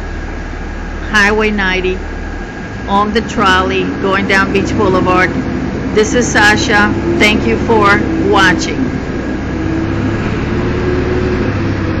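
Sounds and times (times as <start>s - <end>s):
engine hum and road noise: 0.0s - 12.0s
steady tone: 0.0s - 12.0s.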